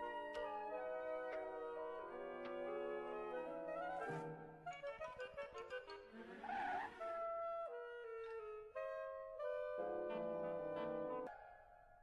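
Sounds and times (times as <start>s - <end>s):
orchestral cartoon music: 0.0s - 11.3s.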